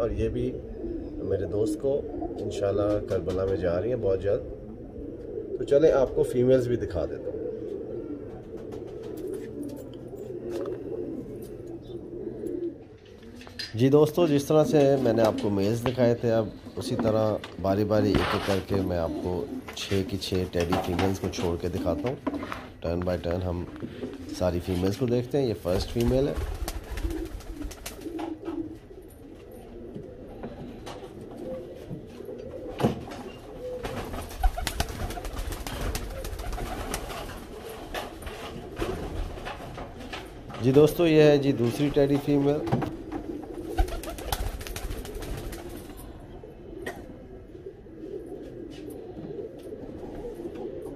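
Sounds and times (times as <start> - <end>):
pigeons cooing: 0.0 - 50.9
wings fluttering: 8.2 - 11.9, 25.6 - 29.4, 33.0 - 40.7, 42.8 - 46.1.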